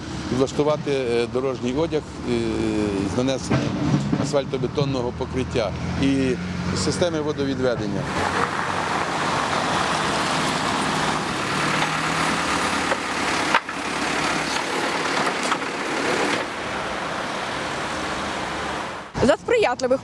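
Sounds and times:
construction machinery engine drone: 0:00.0 - 0:19.3
passing cars: 0:00.0 - 0:20.0.

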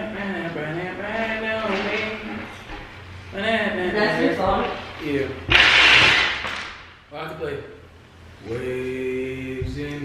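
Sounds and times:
young man singing: 0:08.5 - 0:10.0.

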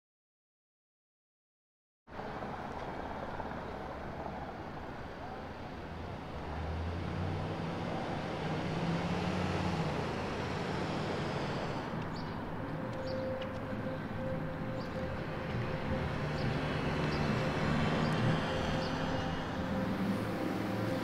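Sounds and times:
road traffic hum: 0:02.1 - 0:21.0
vehicle engine rumble: 0:02.1 - 0:21.0.

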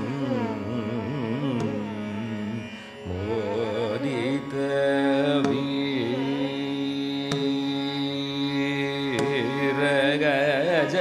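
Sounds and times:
held melodic vocal line: 0:00.0 - 0:11.0
tanpura drone: 0:00.0 - 0:11.0.

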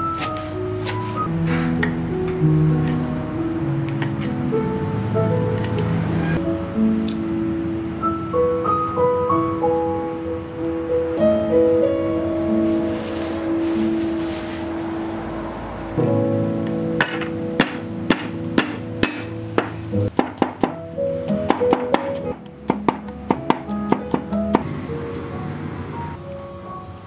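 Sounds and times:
background music: 0:00.0 - 0:27.0
knife chopping on wooden board: 0:17.0 - 0:20.8.

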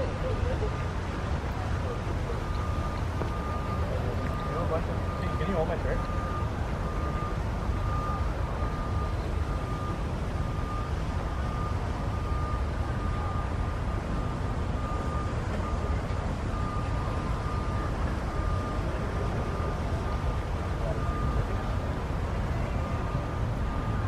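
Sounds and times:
low outdoor rumble: 0:00.0 - 0:24.0.

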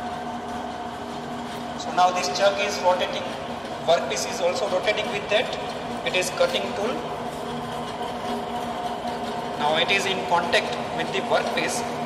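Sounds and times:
lathe humming idle: 0:00.0 - 0:12.0.

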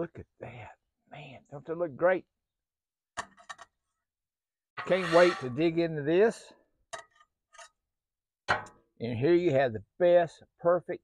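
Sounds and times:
metal spatula scraping a plate: 0:04.8 - 0:05.8.

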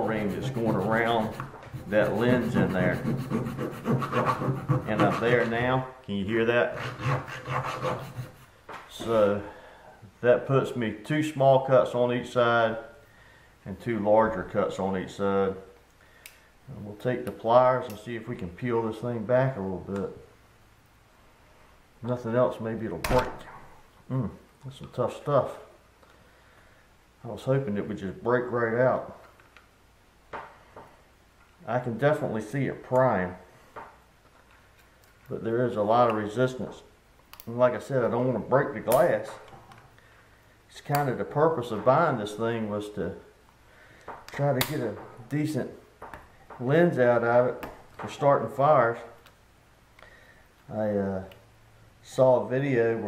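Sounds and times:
saw blade rasping through plastic: 0:00.0 - 0:05.6, 0:06.7 - 0:08.5.

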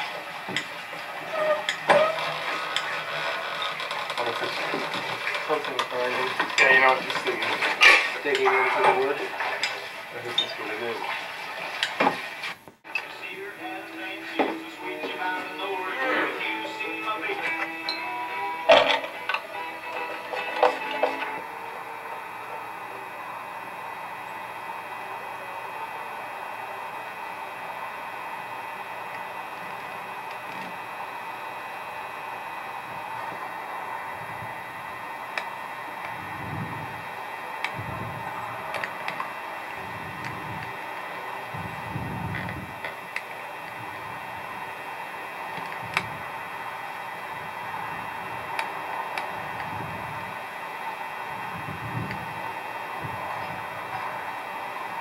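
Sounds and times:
steady hiss and hum: 0:00.0 - 0:55.0.

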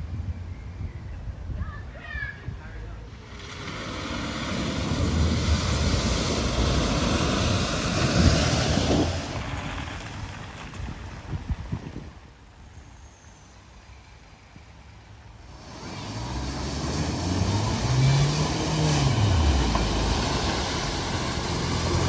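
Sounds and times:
car driving through floodwater: 0:03.1 - 0:11.2, 0:15.3 - 0:22.0.

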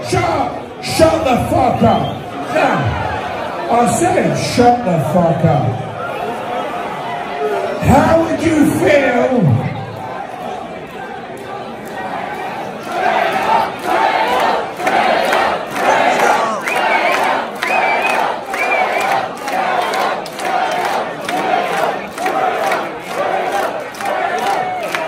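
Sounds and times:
crowd chanting: 0:09.9 - 0:25.0.

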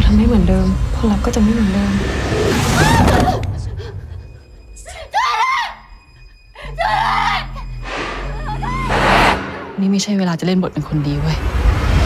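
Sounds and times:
low music drone: 0:07.6 - 0:10.6
swell of noise: 0:07.8 - 0:10.2.

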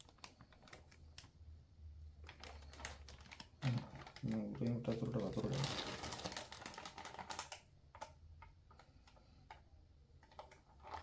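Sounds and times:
plastic bag crinkling: 0:00.0 - 0:01.4, 0:02.1 - 0:09.4, 0:10.2 - 0:11.0.

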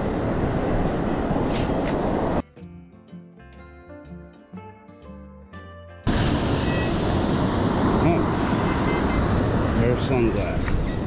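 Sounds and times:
ocean surf: 0:00.0 - 0:02.4, 0:06.1 - 0:11.0
background music: 0:02.4 - 0:06.1.

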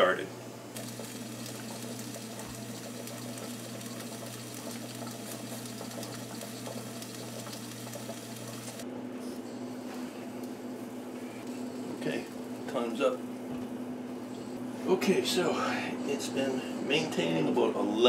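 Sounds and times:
pressure canner hissing and boiling: 0:00.0 - 0:08.8, 0:11.4 - 0:14.2
fast fine rattle: 0:00.8 - 0:08.8.

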